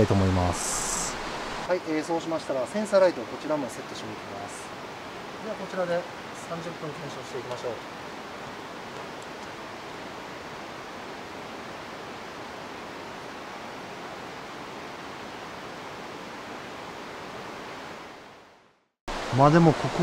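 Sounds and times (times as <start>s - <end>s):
river water rushing: 0.0s - 18.4s, 19.1s - 20.0s.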